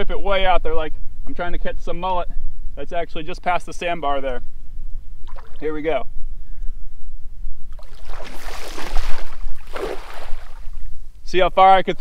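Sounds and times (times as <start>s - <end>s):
low wind rumble: 0.0s - 12.0s
cast net rushing swish: 7.8s - 10.8s.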